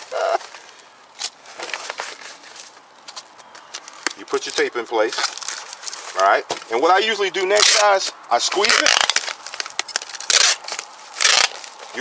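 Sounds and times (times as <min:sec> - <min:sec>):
packing tape clicks and rustles: 0:00.1 - 0:06.7, 0:07.4 - 0:12.0.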